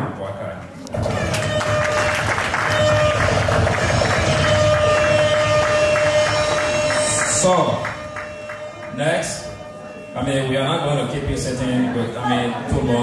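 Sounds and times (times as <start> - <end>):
audience applause and cheering: 0.9 - 10.0
music holding long note: 1.0 - 13.0.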